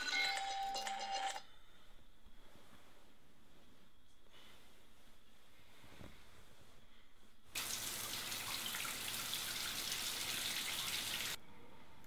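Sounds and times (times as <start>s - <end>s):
tap water running into sink: 7.6s - 11.4s.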